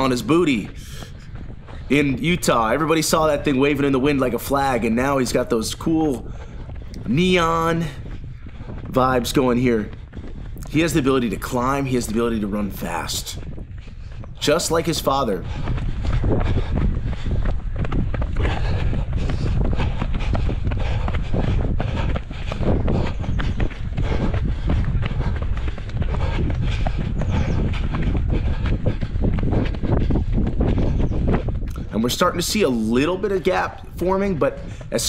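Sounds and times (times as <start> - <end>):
running footsteps on dirt: 0.0 - 35.0
wind rumble on microphone: 0.0 - 35.0.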